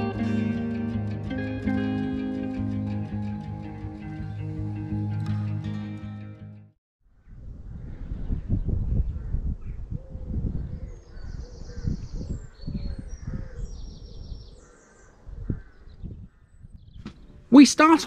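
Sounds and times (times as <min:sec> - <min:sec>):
wind on microphone: 0:07.2 - 0:17.5
birds calling: 0:10.8 - 0:18.0.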